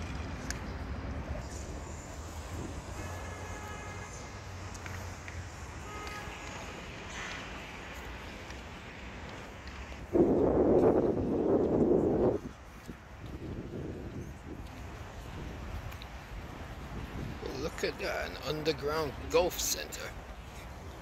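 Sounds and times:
low city rumble: 0:00.0 - 0:21.0.

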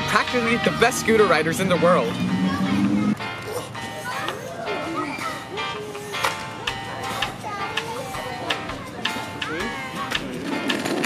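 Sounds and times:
music with held notes: 0:00.0 - 0:11.0.

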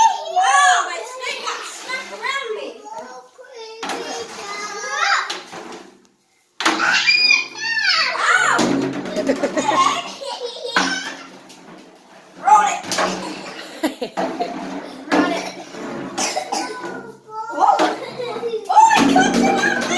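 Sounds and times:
children calling out and squealing: 0:00.0 - 0:05.5, 0:06.6 - 0:11.4, 0:12.4 - 0:13.6, 0:15.0 - 0:19.9.

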